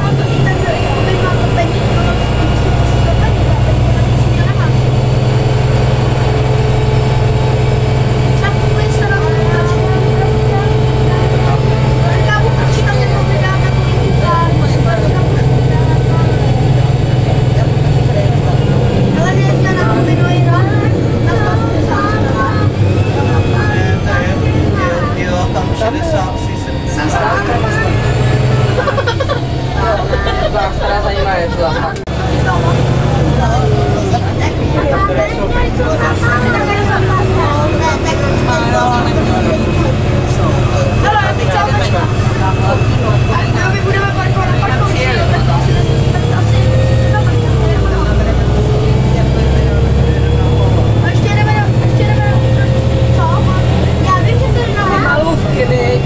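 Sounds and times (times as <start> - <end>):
bus diesel engine running: 0.0 - 56.0
passengers chattering: 0.0 - 56.0.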